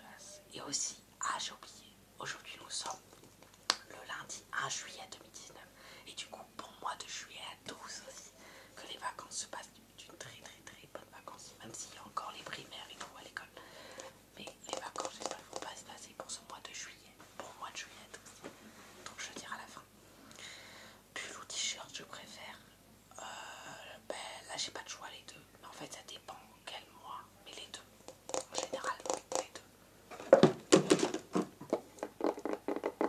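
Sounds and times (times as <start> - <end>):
young man whispering: 0.0 - 3.0, 3.8 - 18.4, 19.0 - 19.9, 21.1 - 29.7.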